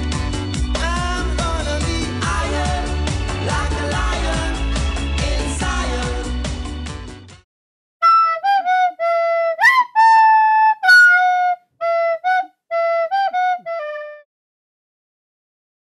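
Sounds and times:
solo flute-like melody: 8.0 - 14.3.

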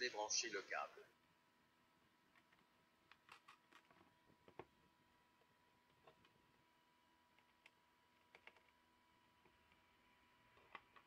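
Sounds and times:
faint clicks on plastic laptop case: 7.3 - 8.8.

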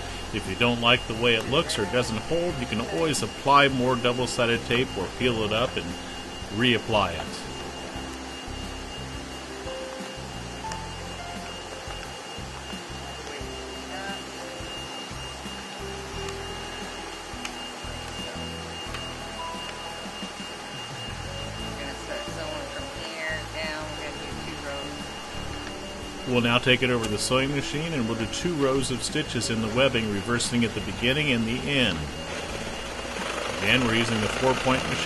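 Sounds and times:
high whine: 0.0 - 35.0
vacuum blower whirring: 0.0 - 35.0.

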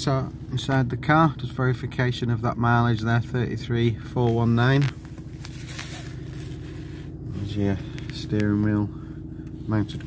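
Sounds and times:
car engine idling: 0.0 - 10.0
faint rustling: 4.2 - 8.8.

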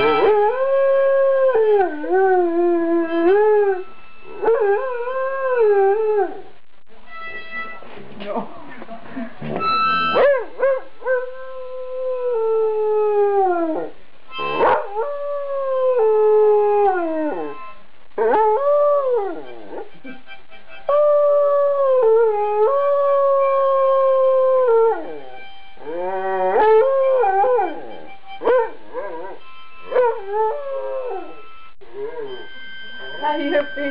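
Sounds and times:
harmonica: 0.0 - 0.7, 3.0 - 5.4, 7.0 - 8.2, 9.4 - 10.3, 14.3 - 14.9, 17.4 - 17.9, 18.8 - 21.4, 25.0 - 33.9
dog howling: 21.8 - 33.6.

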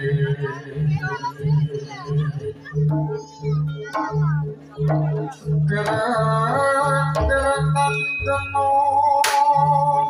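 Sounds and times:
low beat: 0.0 - 10.0.

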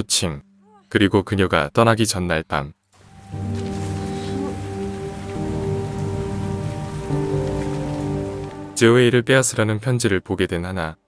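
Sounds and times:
steady rain falling: 3.0 - 9.0
soft music of held notes: 3.0 - 11.0.

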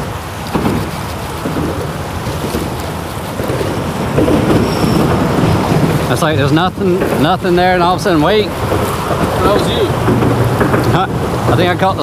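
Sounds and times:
water lapping around boat: 0.0 - 12.0
wind rumbling on microphone: 0.0 - 12.0.

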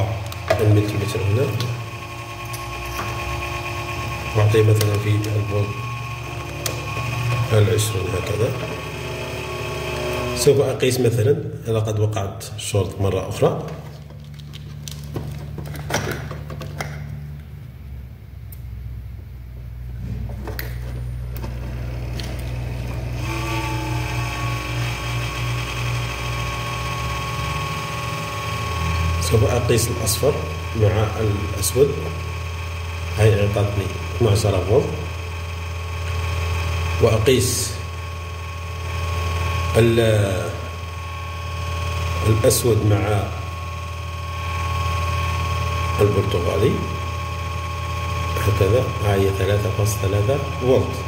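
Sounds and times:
high-pitched whine: 0.0 - 14.0, 17.2 - 51.0
power supply humming: 0.0 - 51.0.

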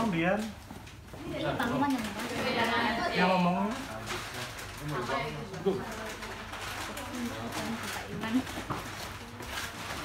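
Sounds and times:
murmur of voices: 1.2 - 10.0.

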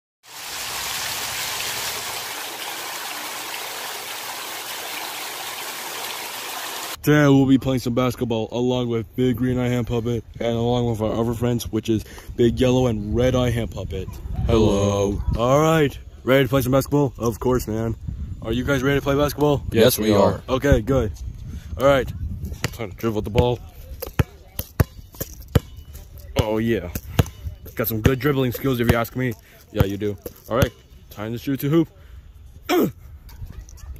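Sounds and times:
fountain water splashing: 0.2 - 7.0
basketball bouncing on hard court: 22.6 - 25.8, 26.9 - 27.4.

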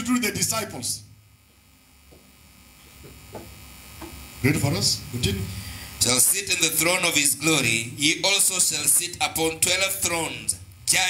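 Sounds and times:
electrical hum and buzz: 0.0 - 11.0.

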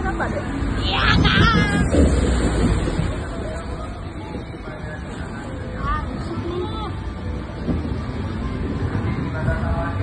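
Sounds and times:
water rushing and splashing: 0.0 - 10.0
wind rumbling on microphone: 0.0 - 10.0.

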